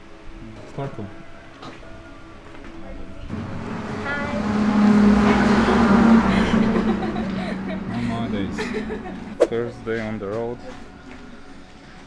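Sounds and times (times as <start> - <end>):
motor vehicle passing: 3.3 - 10.9.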